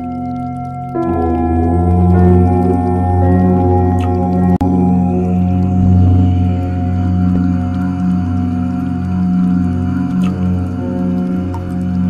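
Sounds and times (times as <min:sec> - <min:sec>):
deep chanting drone: 0:00.0 - 0:12.0
long ringing tones: 0:00.0 - 0:12.0.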